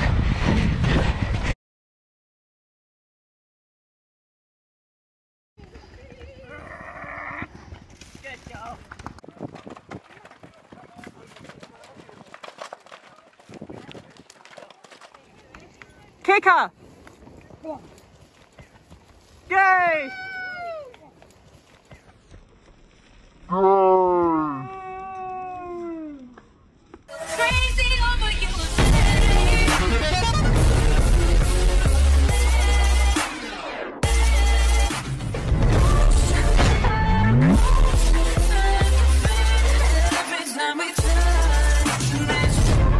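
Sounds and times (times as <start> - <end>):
horse hooves galloping: 5.6 - 23.5
high voice cheering: 19.5 - 21.1.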